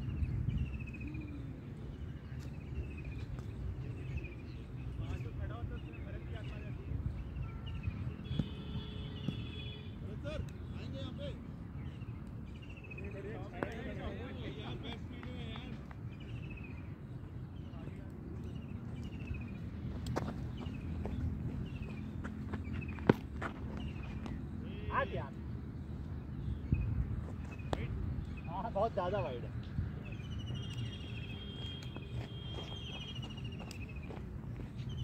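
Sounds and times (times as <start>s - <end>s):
wind rumble on microphone: 0.0s - 9.4s, 26.4s - 28.5s
distant players' voices: 1.0s - 35.0s.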